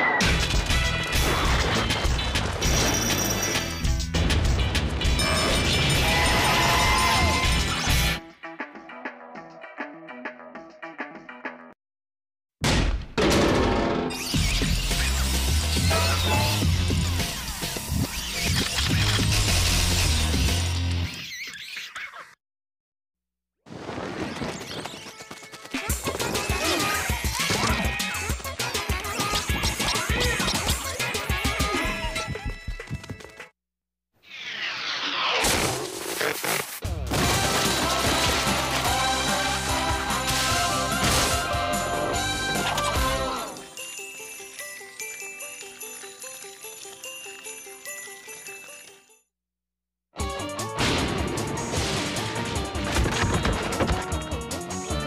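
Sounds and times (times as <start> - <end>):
jingle music: 37.4 - 49.3.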